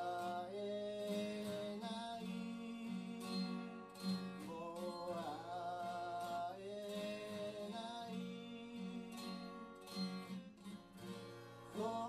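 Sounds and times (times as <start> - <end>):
man singing: 0.0 - 9.8, 11.6 - 12.0
acoustic guitar strumming: 0.0 - 12.0.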